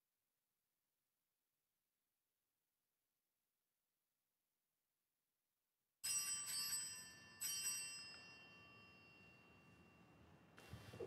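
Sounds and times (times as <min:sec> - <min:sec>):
small bell ringing: 0:06.0 - 0:10.3.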